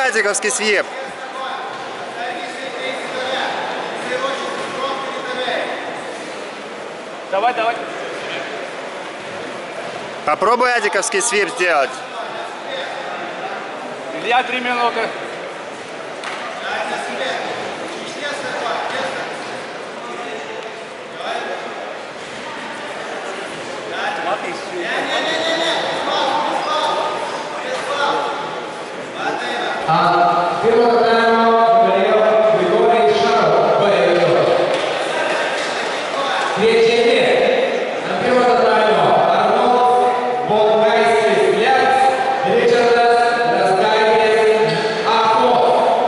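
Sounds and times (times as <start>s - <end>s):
echoing crowd chatter: 0.0s - 46.0s.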